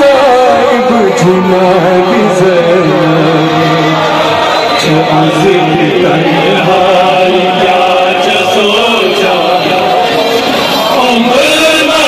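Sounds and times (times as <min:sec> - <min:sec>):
men chanting a lament: 0:00.0 - 0:12.0.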